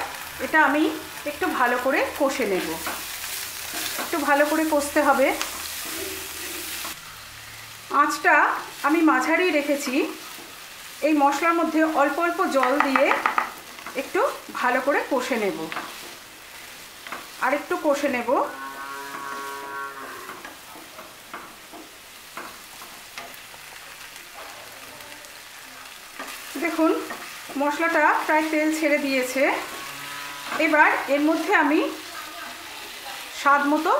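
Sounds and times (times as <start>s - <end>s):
vegetables sizzling in oil: 0.0s - 33.9s
wooden spatula stirring: 1.7s - 7.0s, 12.5s - 18.3s, 19.1s - 24.5s, 26.0s - 31.5s.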